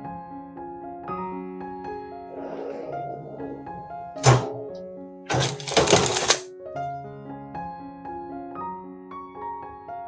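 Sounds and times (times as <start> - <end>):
soft piano music: 6.5 - 10.0.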